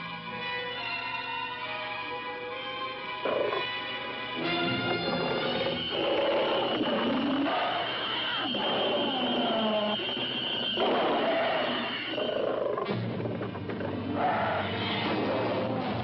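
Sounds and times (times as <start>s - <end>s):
low sliding creature cries: 4.4s - 15.8s.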